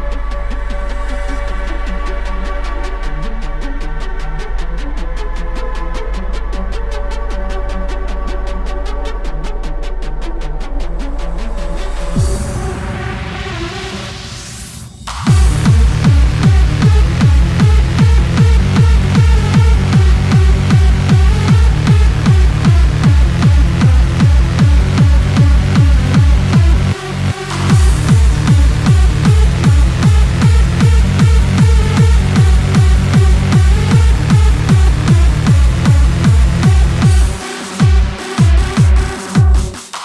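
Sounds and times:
hard dance music: 0:00.0 - 0:40.0
rising synth sweep: 0:11.8 - 0:39.2
heavy kick drum beat: 0:15.1 - 0:40.0.

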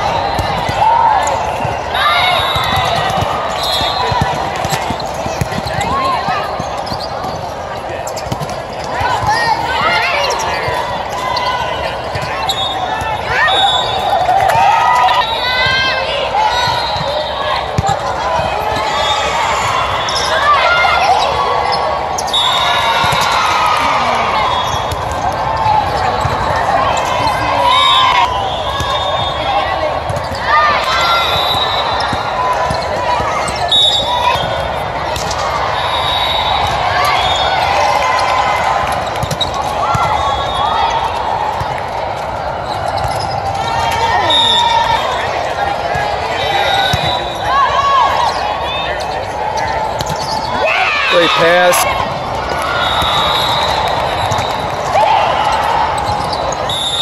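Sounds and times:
volleyball struck and bouncing: 0:02.5 - 0:07.4, 0:38.9 - 0:40.2, 0:49.8 - 0:50.5.

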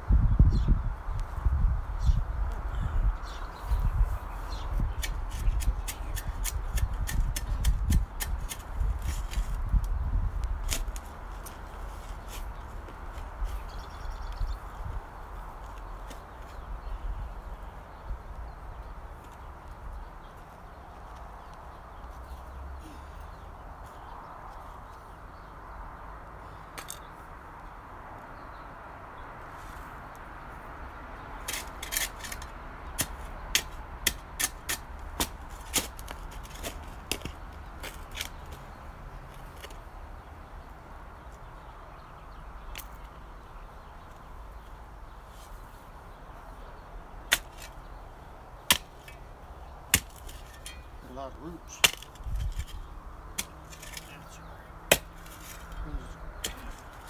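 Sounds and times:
shovel striking rocks: 0:48.7 - 0:49.2, 0:49.9 - 0:50.9, 0:51.8 - 0:52.8, 0:53.4 - 0:54.0, 0:54.9 - 0:55.7.

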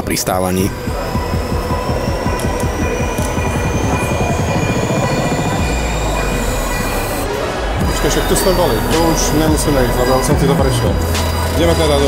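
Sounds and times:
crowded hall ambience: 0:00.0 - 0:12.0
escalator running: 0:00.6 - 0:12.0.

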